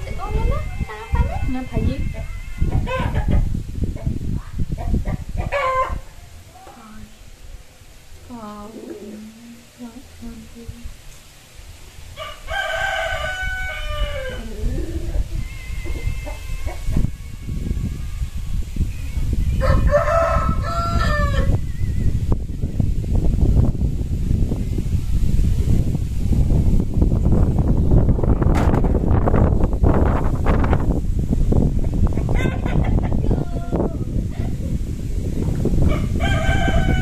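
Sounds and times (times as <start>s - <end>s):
rooster crowing: 0.0s - 3.6s, 5.4s - 6.4s, 12.2s - 22.2s, 32.3s - 34.2s, 35.8s - 37.0s
low rumbling noise: 0.0s - 37.0s.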